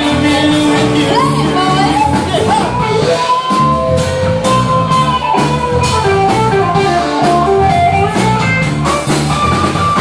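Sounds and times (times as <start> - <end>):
electric guitar: 0.0 - 10.0
live rock band playing: 0.0 - 10.0.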